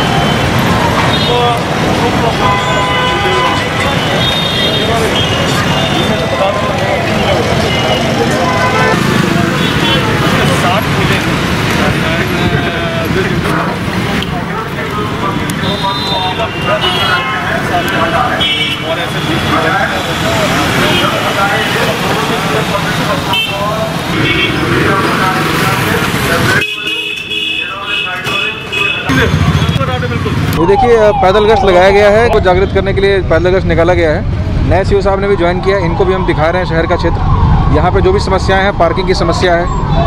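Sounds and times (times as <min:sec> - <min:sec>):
many people talking: 0:00.0 - 0:40.0
running traffic: 0:00.0 - 0:40.0
vehicle horn toots: 0:02.4 - 0:06.8, 0:15.6 - 0:19.4.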